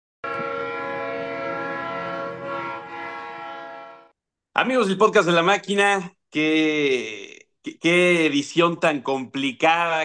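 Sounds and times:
train horn chord: 0.2s - 4.2s.

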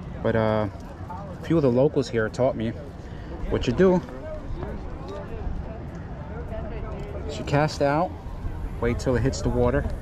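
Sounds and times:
faint conversation: 0.0s - 10.0s
steady low rumble: 0.0s - 10.0s.

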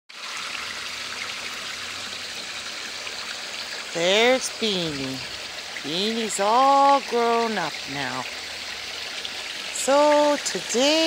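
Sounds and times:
pond water splashing and trickling: 0.1s - 11.0s.

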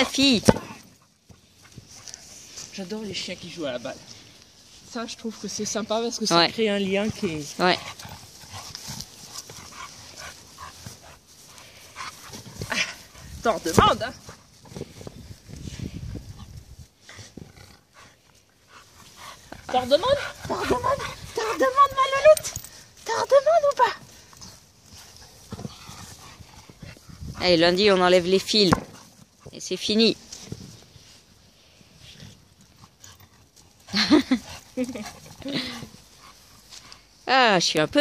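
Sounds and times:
dog panting: 7.1s - 14.8s, 16.3s - 23.0s, 23.9s - 28.1s, 32.1s - 37.2s.

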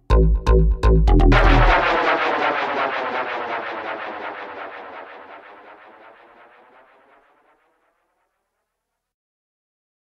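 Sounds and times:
repeating synth pulse: 0.0s - 7.2s.

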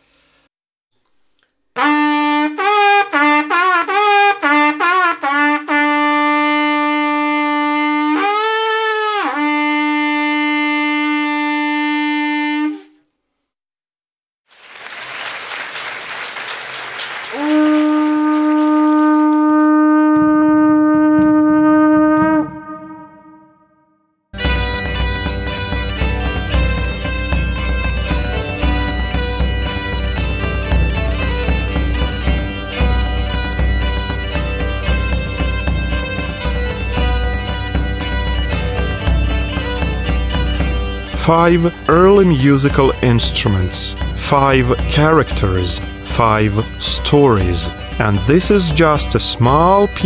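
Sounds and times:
wooden trumpet notes: 1.8s - 13.0s, 17.3s - 23.8s, 24.4s - 50.0s.

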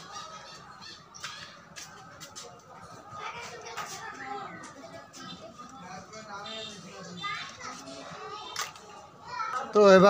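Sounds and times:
faint background voices: 0.0s - 10.0s
man speaking loudly: 9.8s - 10.0s.

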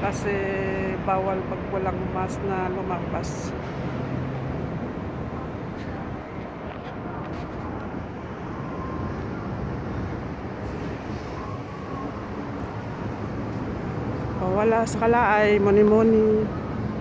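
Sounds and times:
low rumbling outdoor noise: 0.0s - 17.0s.

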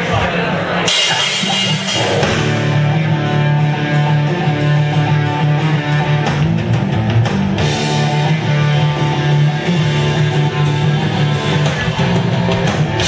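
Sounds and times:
bass: 0.0s - 13.0s
cymbal crash: 0.9s - 2.7s
distorted electric guitar chords: 0.9s - 13.0s
drum-kit beat: 0.9s - 13.0s.

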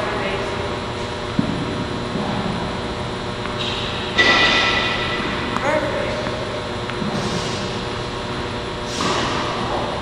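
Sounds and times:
ventilation hum: 0.0s - 10.0s.

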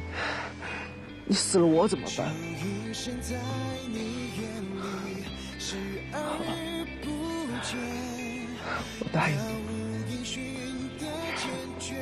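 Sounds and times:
soft background music: 0.0s - 12.0s
man gasping and sobbing: 3.9s - 10.1s, 10.9s - 12.0s.

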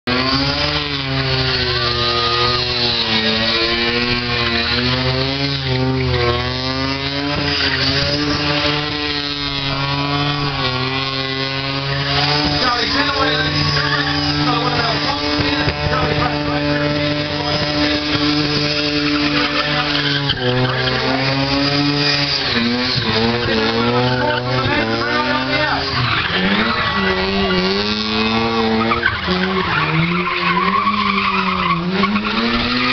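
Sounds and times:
car engine revving high: 0.0s - 32.9s
tyres spinning and squealing: 0.1s - 32.9s.

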